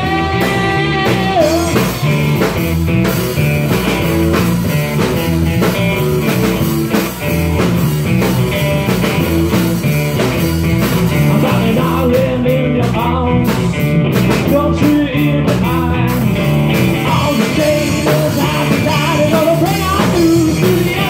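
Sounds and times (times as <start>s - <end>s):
bass guitar: 0.0s - 21.0s
drum kit: 0.0s - 21.0s
electric guitar: 0.0s - 21.0s.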